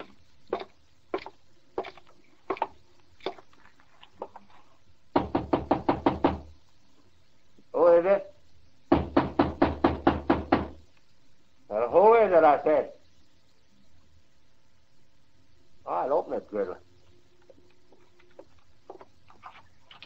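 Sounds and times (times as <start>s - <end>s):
footsteps on wooden floor: 0.0s - 3.4s, 17.4s - 19.6s
rapid knocking on wooden door: 5.2s - 6.6s, 8.9s - 10.8s.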